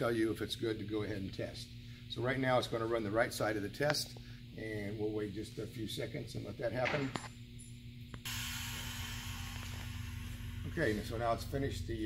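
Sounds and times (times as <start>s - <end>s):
machine hum: 0.0s - 12.0s
compressed air hissing: 8.2s - 11.8s.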